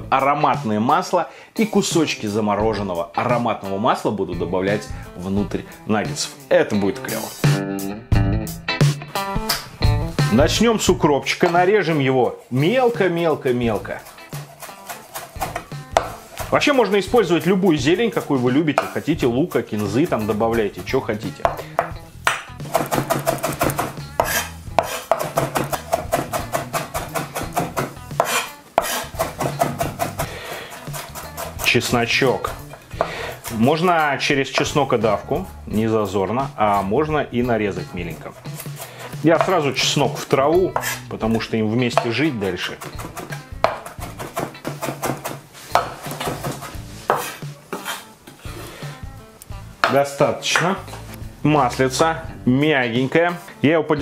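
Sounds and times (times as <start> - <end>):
background music: 0.0 - 54.0
knife chopping on wooden board: 14.0 - 16.6, 21.4 - 31.7, 40.8 - 41.0, 42.8 - 48.1.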